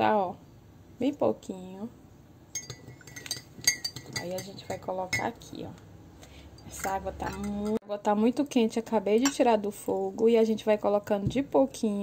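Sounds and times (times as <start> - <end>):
glass ringing: 2.5 - 5.4
metal spoon clinking glass: 2.5 - 5.4, 6.6 - 7.8.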